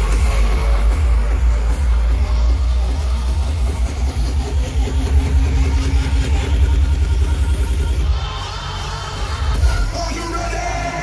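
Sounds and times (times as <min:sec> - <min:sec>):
loud electronic dance music: 0:00.0 - 0:11.0.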